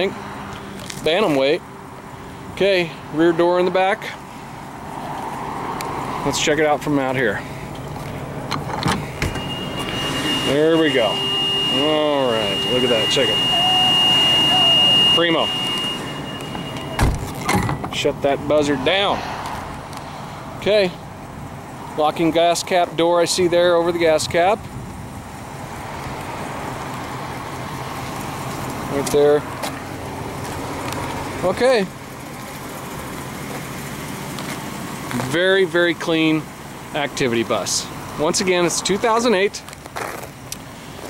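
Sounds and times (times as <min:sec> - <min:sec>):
vehicle engine rumble: 0:00.0 - 0:41.0
door alarm buzzer: 0:09.2 - 0:17.2.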